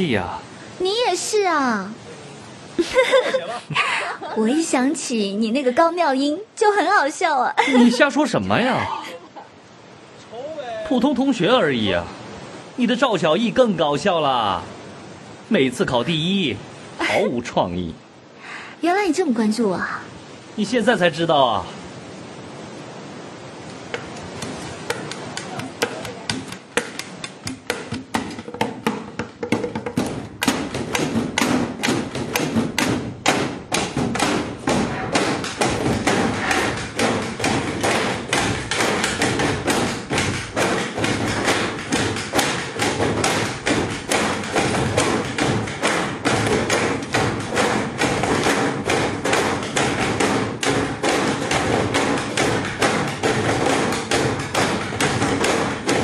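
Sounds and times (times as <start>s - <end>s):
desks knocked in rhythm: 23.9s - 56.0s.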